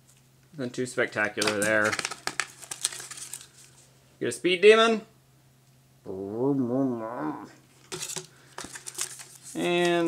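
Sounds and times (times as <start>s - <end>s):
packaging crinkling: 1.4s - 3.8s, 7.8s - 10.0s.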